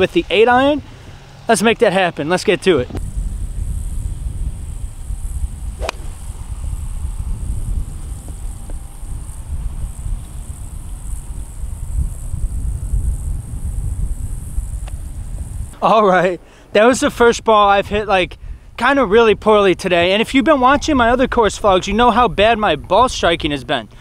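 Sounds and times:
wind rumbling on microphone: 0:02.7 - 0:15.8, 0:17.0 - 0:24.0
golf club striking ball: 0:05.8 - 0:06.6.

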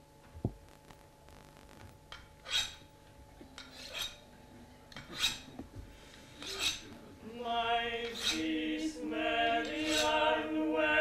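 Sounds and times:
knives rasping on sharpening steels: 0:02.4 - 0:02.9, 0:03.6 - 0:04.3, 0:05.0 - 0:05.6, 0:06.3 - 0:06.9, 0:08.0 - 0:08.5, 0:09.6 - 0:10.2.

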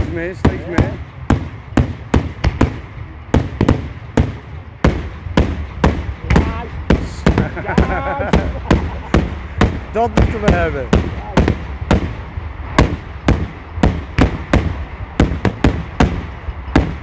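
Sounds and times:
fireworks bursting in loud bangs: 0:00.0 - 0:17.0.

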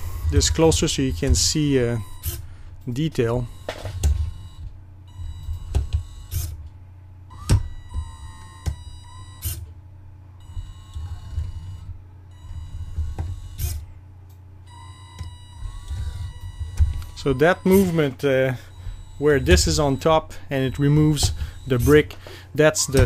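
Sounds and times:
electric motor hum and whine: 0:00.0 - 0:23.0.

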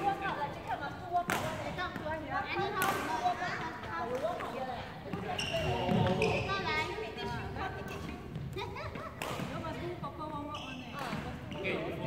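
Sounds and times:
voices talking in a hall: 0:00.0 - 0:12.0.

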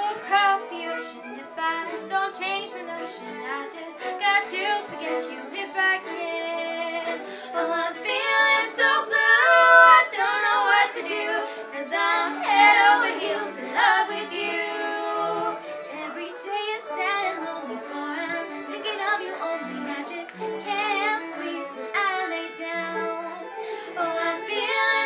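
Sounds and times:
women singing together: 0:00.0 - 0:25.0.

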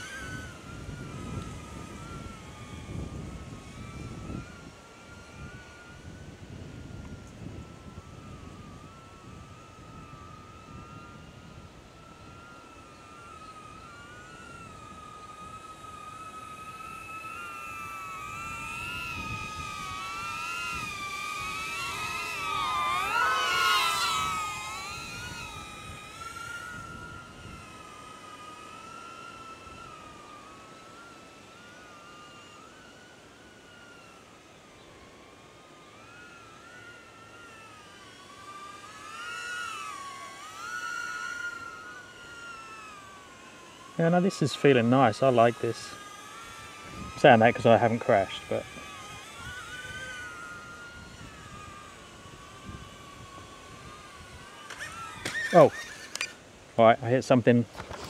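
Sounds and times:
drone propellers whining: 0:00.0 - 0:58.0.

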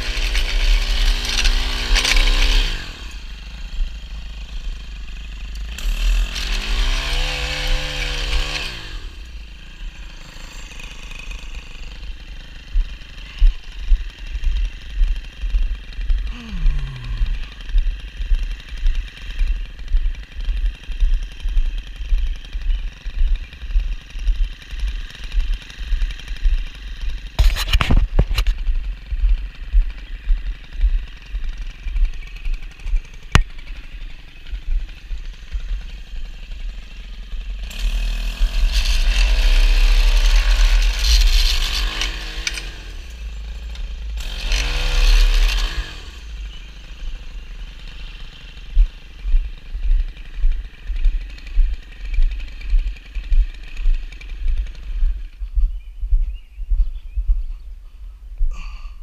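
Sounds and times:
two-stroke edger engine revving: 0:00.0 - 0:55.8.

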